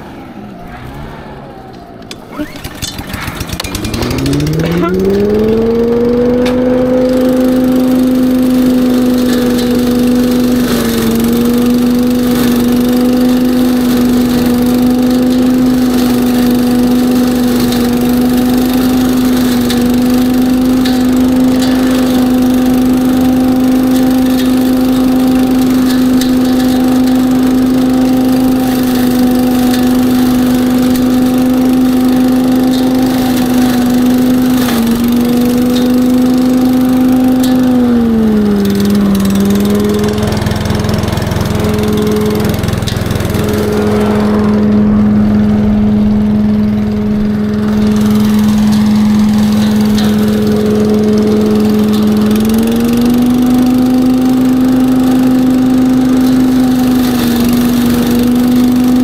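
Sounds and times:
leaf vacuum engine running: 0:00.0 - 0:59.0
vacuum sucking dry leaves: 0:00.0 - 0:59.0.

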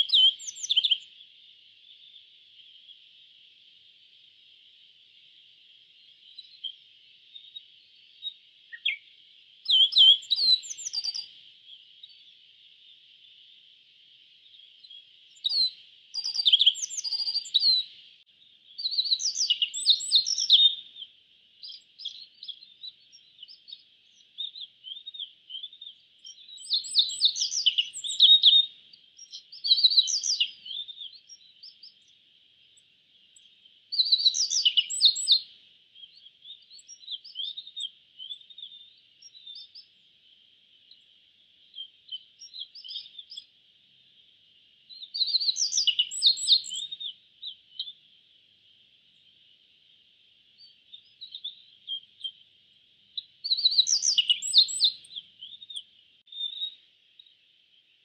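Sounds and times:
bird chirping: 0:00.0 - 0:58.0.

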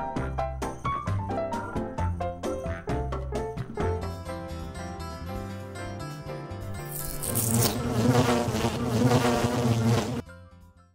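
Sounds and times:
buzzing fly sound effect: 0:06.9 - 0:10.2.

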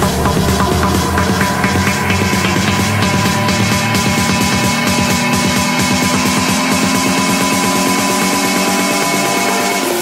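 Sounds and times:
buzzy synth pulses: 0:00.0 - 0:10.0.

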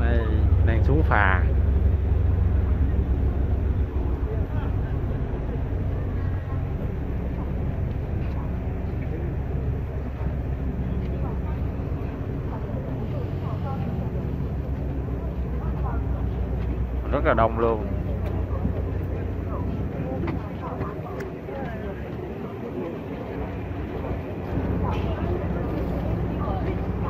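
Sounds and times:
crowd chatter: 0:00.0 - 0:27.0
ferry engine drone: 0:00.0 - 0:27.0.

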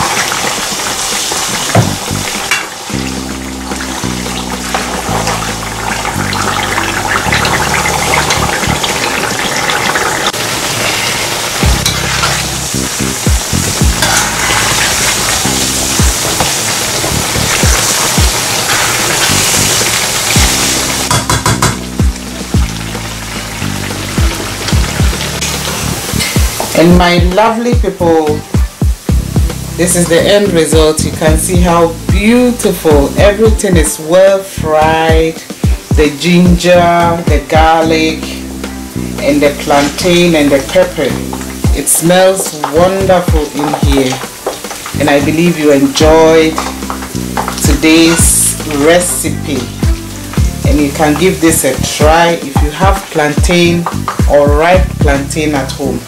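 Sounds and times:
food deep frying in oil: 0:00.0 - 0:34.2, 0:34.8 - 0:56.0
spoon scraping a pan: 0:10.8 - 0:12.6, 0:13.9 - 0:15.6.

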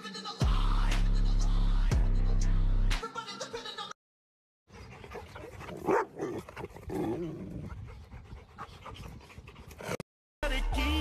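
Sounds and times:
dog panting: 0:04.7 - 0:10.0.

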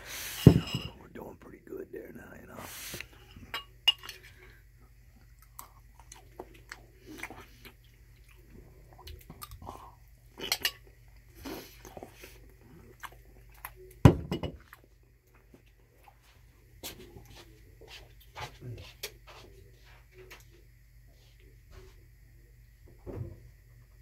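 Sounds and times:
close-up chewing: 0:04.1 - 0:14.0.

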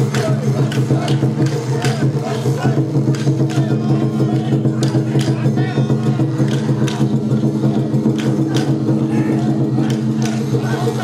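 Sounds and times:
sharp percussion strikes: 0:00.0 - 0:11.0.

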